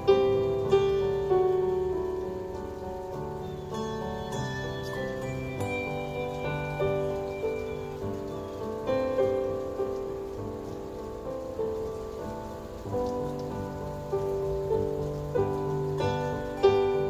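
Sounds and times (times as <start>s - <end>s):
held low bell note: 3.4s - 8.6s
handbells playing slow melody: 3.4s - 9.3s.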